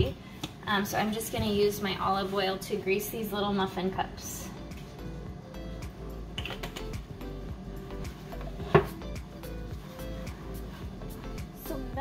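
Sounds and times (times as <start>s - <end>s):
background music with held notes: 4.1s - 12.0s
muffin cups clicking and tapping: 6.4s - 7.0s.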